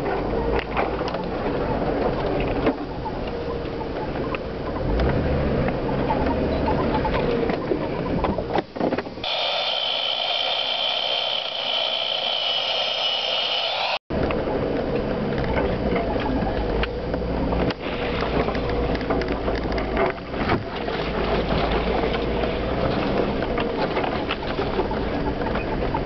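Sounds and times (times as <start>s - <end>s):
engine and road rumble: 0.0s - 26.0s
steady high-pitched whine: 9.2s - 14.7s.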